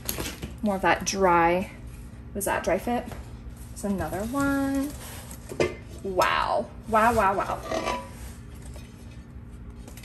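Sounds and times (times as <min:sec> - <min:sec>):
fabric and packing rustling: 0:02.6 - 0:05.6.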